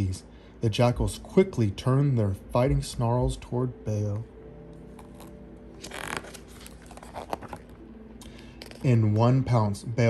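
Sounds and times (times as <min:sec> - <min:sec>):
book page turning rustle: 0:04.8 - 0:07.8, 0:08.4 - 0:09.0
soft paper crackles: 0:04.9 - 0:07.8.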